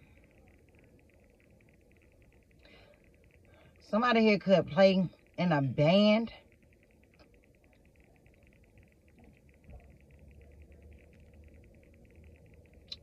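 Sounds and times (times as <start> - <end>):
faint background hum: 0.0 - 13.0
fast high-pitched pulsing: 0.0 - 13.0.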